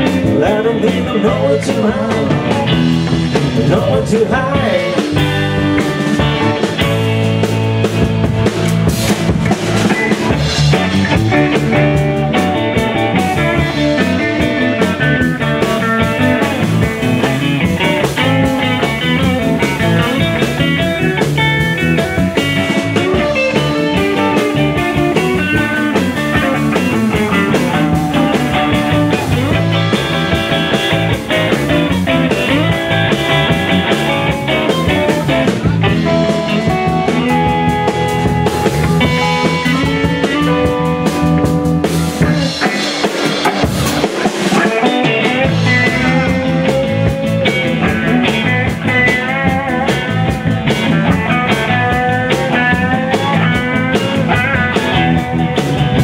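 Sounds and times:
bass guitar: 0.0s - 56.0s
drum kit: 0.0s - 56.0s
electric guitars: 0.0s - 56.0s.

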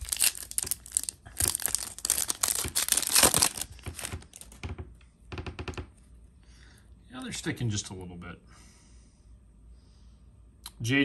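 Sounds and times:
foil wrapper tearing and crinkling: 0.0s - 4.6s.

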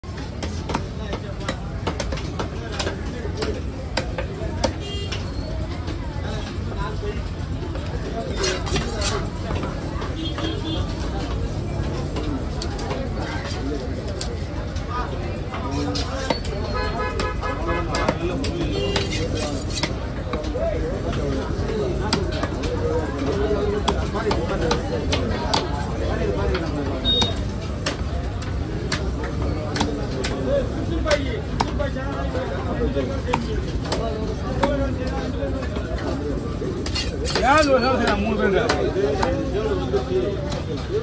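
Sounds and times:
cleaver chopping fish on wood: 0.4s - 4.8s, 27.2s - 28.1s, 29.7s - 30.4s, 31.1s - 31.8s.

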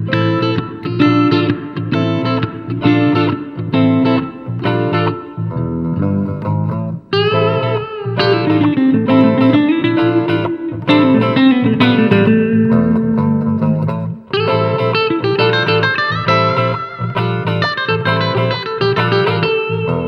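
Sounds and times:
electric bass line: 0.0s - 15.0s
lead electric guitar melody: 0.0s - 20.0s
second electric guitar: 0.0s - 20.0s.

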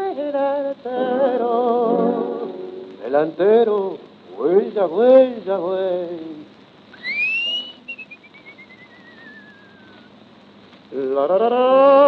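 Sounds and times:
old record hiss: 0.0s - 12.0s
man whistling gliding down: 7.0s - 10.1s.

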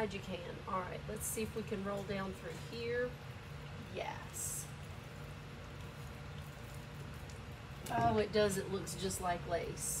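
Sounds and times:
steady low hum: 0.0s - 10.0s
roller crackling through wet paint: 4.3s - 9.8s.

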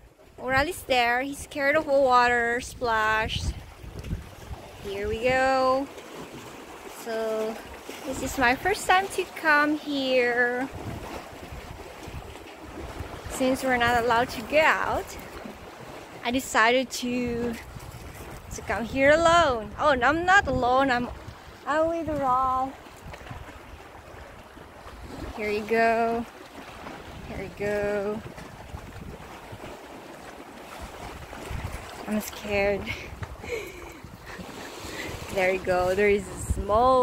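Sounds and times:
wind buffeting microphone: 0.0s - 37.0s
sea water washing against rocks: 0.3s - 37.0s.

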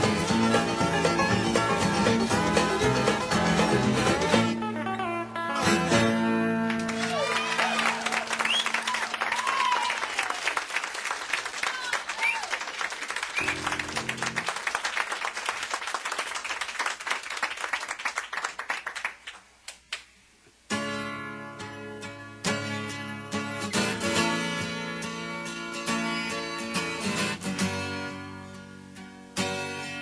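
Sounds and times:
guitar strum: 0.0s - 7.0s, 13.4s - 14.4s
country-rock band playing: 0.0s - 9.5s, 13.4s - 14.5s, 20.7s - 30.0s
audience applauding and cheering: 6.5s - 19.5s.

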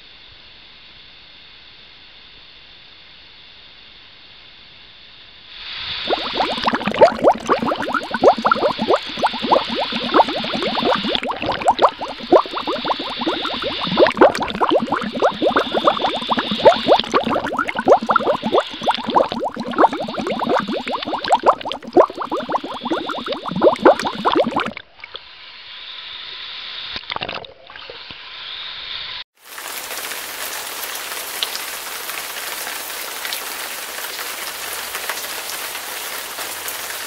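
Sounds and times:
waterfall splashing into pool: 29.4s - 37.0s.

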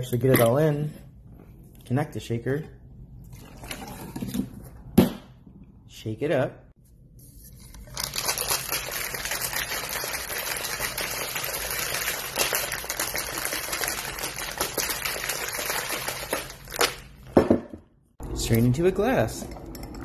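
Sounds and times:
ice rattling in cocktail shaker: 7.8s - 17.0s.

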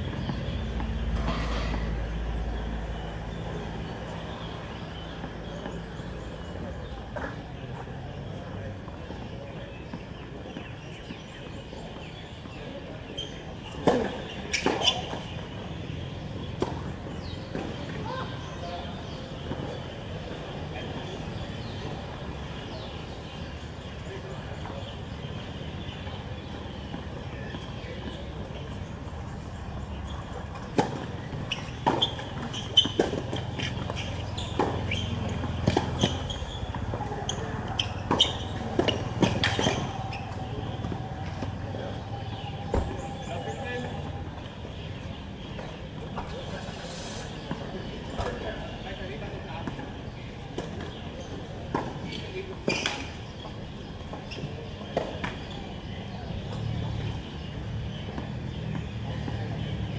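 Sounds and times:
voices: 0.0s - 59.9s
tennis ball bouncing: 29.8s - 41.6s.

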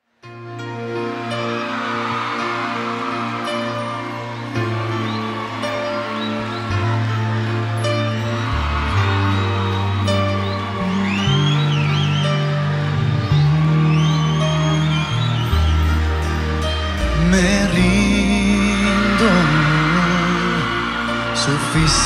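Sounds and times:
held keyboard chords: 0.2s - 22.0s
high gliding lead notes: 0.2s - 22.0s
bass line: 6.5s - 22.0s.

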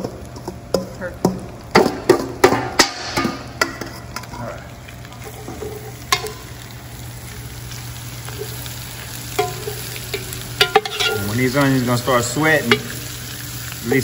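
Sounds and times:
onions sizzling in a pot: 0.0s - 14.0s
metal spoon scraping a pot: 9.4s - 11.3s.

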